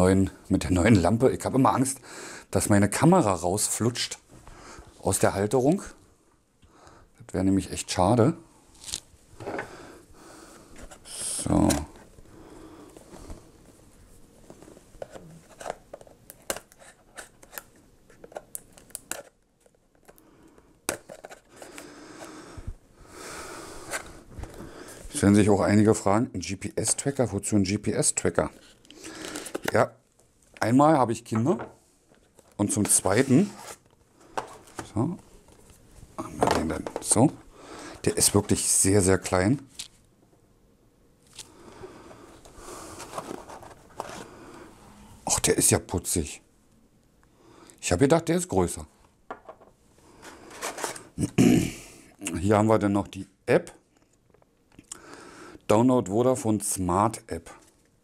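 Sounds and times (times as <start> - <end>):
cardboard scraping and rustling: 32.7 - 34.8, 42.9 - 44.3.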